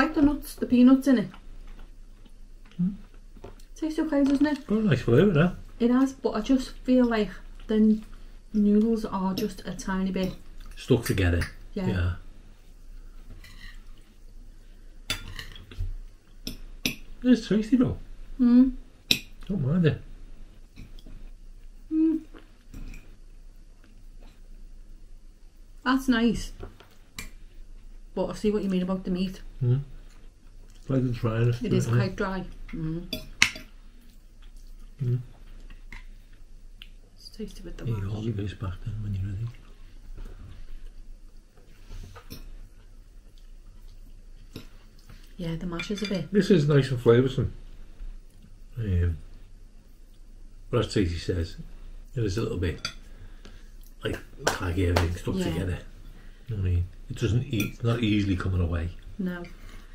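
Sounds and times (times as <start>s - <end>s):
cutlery clinking on ceramic bowls: 15.1s - 15.8s, 33.1s - 33.7s.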